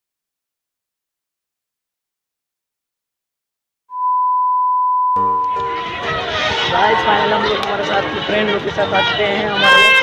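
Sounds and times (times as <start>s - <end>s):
steady test-tone beep: 3.9s - 5.7s.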